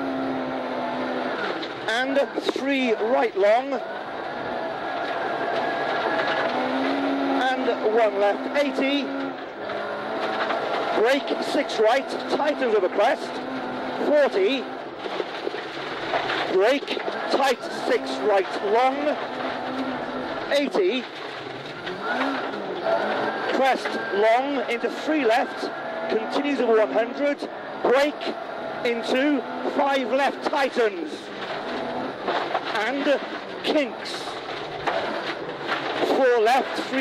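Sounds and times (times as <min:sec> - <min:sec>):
car engine running: 0:00.0 - 0:37.0
gravel road noise: 0:00.0 - 0:37.0
lower steady engine note: 0:00.0 - 0:37.0.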